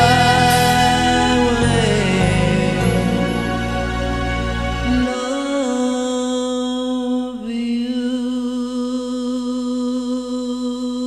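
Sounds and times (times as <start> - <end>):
sparse backing music: 0.0 - 5.6
man singing long note: 0.0 - 9.3.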